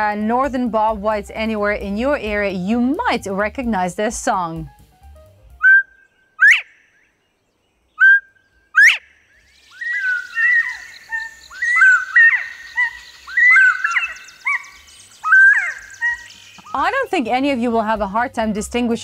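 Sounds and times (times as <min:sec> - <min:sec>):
bobwhite whistling: 0:05.6 - 0:06.8, 0:07.9 - 0:17.1.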